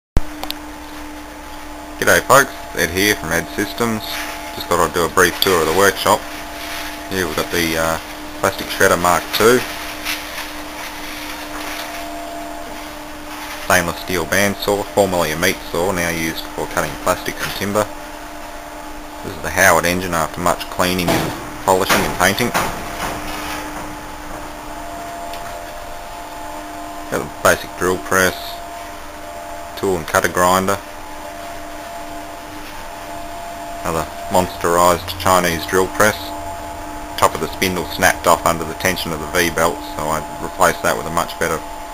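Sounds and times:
faint steady whine: 0.2 - 41.9
machine hum: 0.2 - 41.9.

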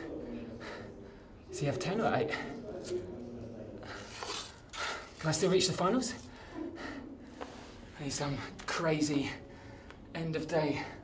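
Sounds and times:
man breathing heavily: 0.0 - 1.5, 9.3 - 10.1.

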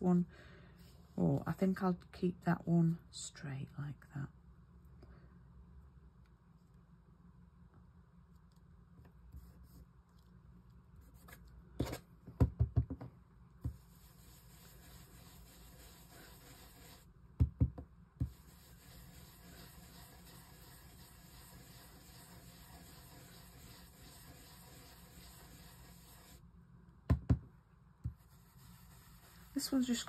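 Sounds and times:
brush rubbing over paper stencil: 13.7 - 17.1, 18.2 - 26.4, 28.1 - 30.0.

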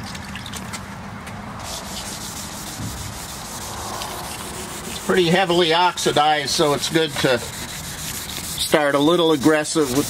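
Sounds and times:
wet sandpaper rubbing: 1.6 - 10.0.

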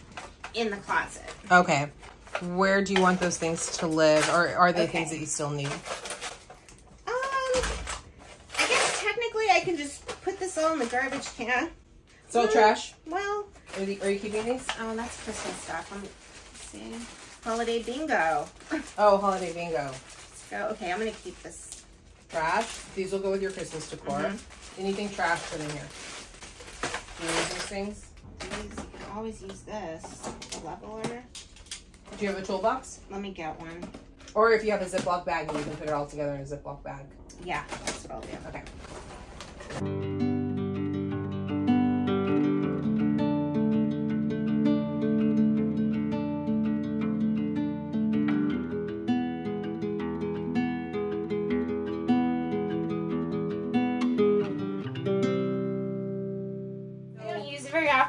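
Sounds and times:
woman talking: 0.5 - 6.0, 7.0 - 7.9, 8.6 - 26.0, 27.1 - 31.3, 32.1 - 38.9, 57.2 - 58.0
person speaking: 12.3 - 12.8
plucked melody music: 39.8 - 57.4.

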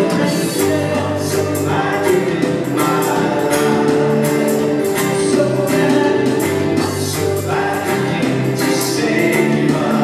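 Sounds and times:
drum kit steady beat: 0.0 - 10.0
worship band playing: 0.0 - 10.0.

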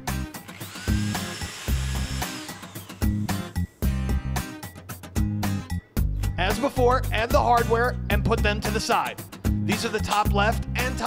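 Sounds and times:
funky background music: 0.0 - 11.0
electric drill boring pipe: 0.4 - 3.9.

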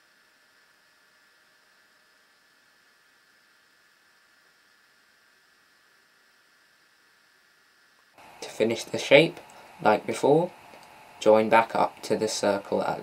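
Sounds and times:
faint microphone hiss: 0.0 - 13.0.

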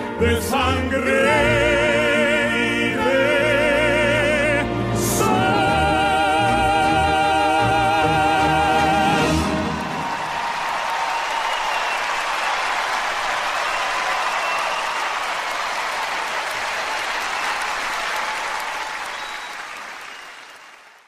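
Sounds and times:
concert audience applauding: 7.4 - 21.0.

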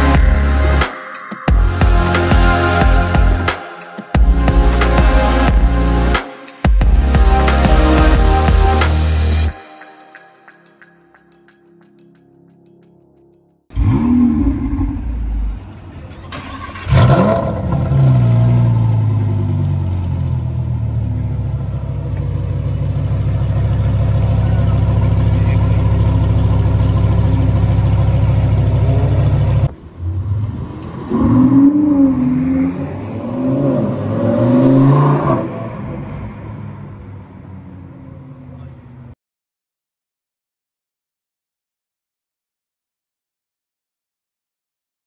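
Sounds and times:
engine revving: 13.7 - 21.3, 24.6 - 36.5
car engine starting and idling: 13.7 - 32.8.

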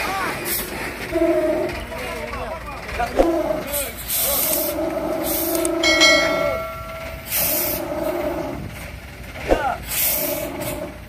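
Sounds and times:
truck air brakes hissing: 0.0 - 1.6, 3.6 - 5.8, 7.0 - 11.0
voices: 0.0 - 11.0
steady two-pitched tone: 5.8 - 7.8.

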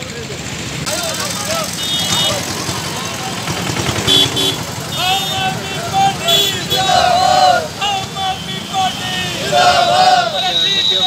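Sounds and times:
crowd voices: 0.0 - 11.0
street traffic: 0.0 - 11.0
vehicle horn beeps: 1.8 - 2.5, 4.0 - 6.8, 10.3 - 11.0.

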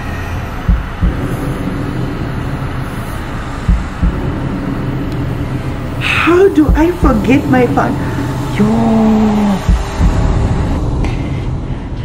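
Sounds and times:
dull low thumps: 0.0 - 11.7
rumbling background noise: 0.0 - 12.0.

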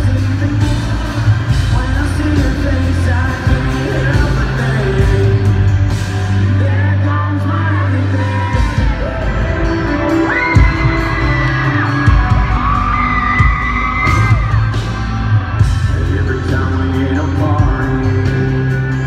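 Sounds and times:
live band playing: 0.0 - 19.0.

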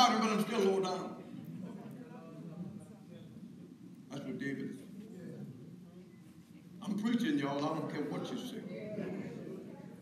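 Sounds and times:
man preaching: 0.0 - 1.2.

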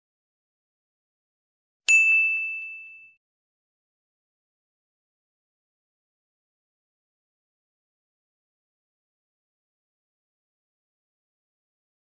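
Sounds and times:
bell ding ringing: 1.9 - 3.2.

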